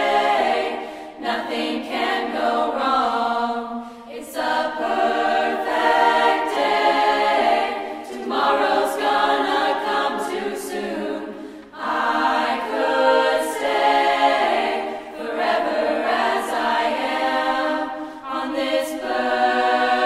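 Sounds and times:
choir singing: 0.0s - 20.0s.

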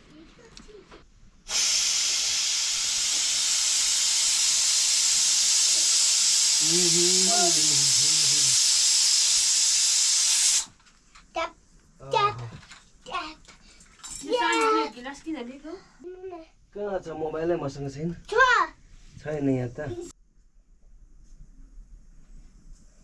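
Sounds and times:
loud cooking hiss: 1.5s - 10.8s
person speaking: 6.6s - 8.6s.

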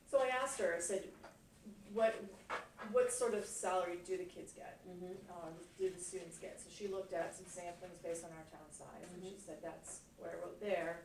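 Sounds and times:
quiet speech: 4.8s - 6.4s.

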